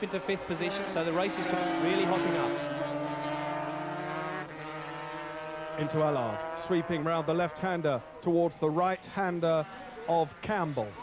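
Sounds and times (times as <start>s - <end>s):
motorcycle engine at high revs: 0.0s - 8.2s.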